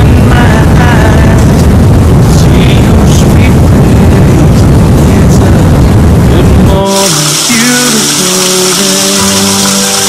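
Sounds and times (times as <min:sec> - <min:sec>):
waterfall rushing: 0:06.9 - 0:10.0.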